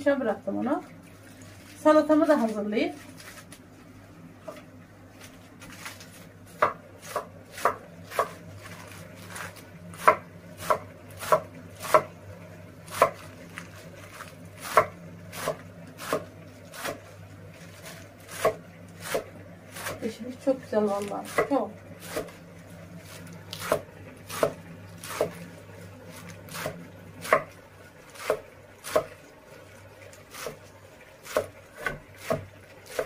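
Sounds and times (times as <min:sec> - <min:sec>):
knife chopping on wooden board: 0:06.6 - 0:08.4, 0:09.4 - 0:12.1, 0:12.9 - 0:13.2, 0:14.1 - 0:17.1, 0:17.8 - 0:20.0, 0:21.0 - 0:22.4, 0:23.1 - 0:25.4, 0:26.2 - 0:29.2, 0:30.3 - 0:30.6, 0:31.2 - 0:33.0.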